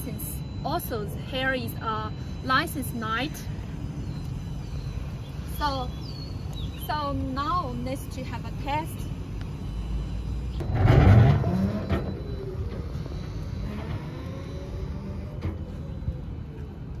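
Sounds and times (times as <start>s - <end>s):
motor whine: 0.0s - 17.0s
electric tricycle driving away: 9.7s - 17.0s.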